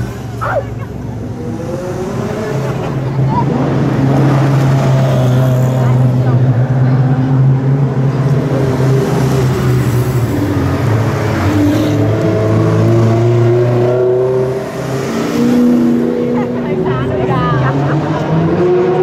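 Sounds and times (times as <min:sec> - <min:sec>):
sports car engines running: 0:00.0 - 0:19.0.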